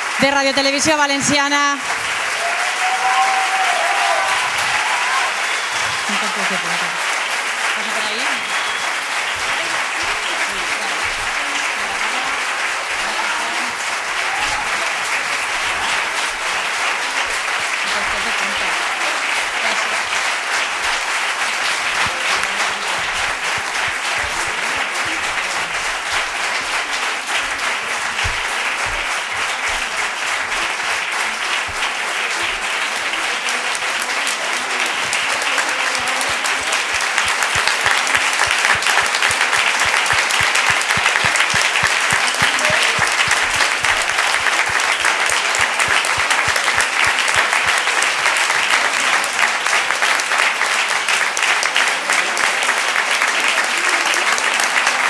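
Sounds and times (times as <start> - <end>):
audience applause: 0.0 - 55.0.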